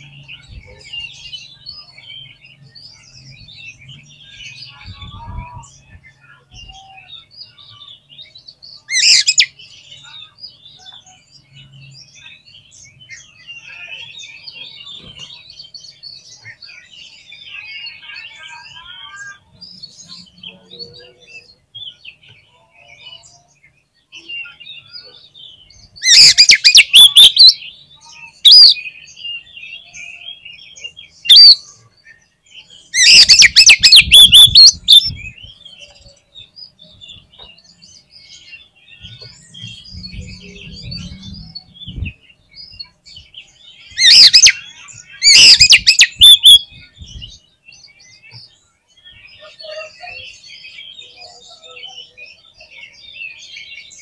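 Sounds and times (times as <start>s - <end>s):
bird chirping and twittering: 0.0s - 54.0s
bird singing: 0.0s - 54.0s.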